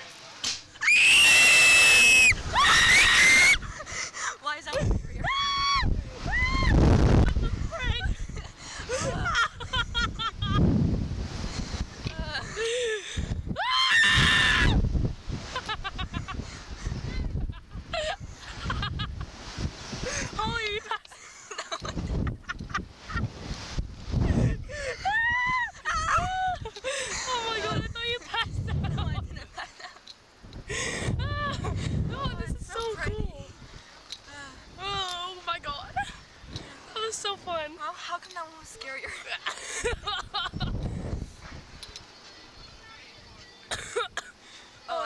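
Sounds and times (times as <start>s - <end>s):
laughing shrieks: 0.8s - 3.6s
women screaming: 0.8s - 3.8s, 5.2s - 6.9s, 13.5s - 14.8s, 24.7s - 27.9s
wind buffeting microphone: 1.3s - 21.0s, 21.8s - 37.8s, 38.6s - 43.8s
people laughing and squealing: 4.8s - 10.6s, 24.4s - 30.2s.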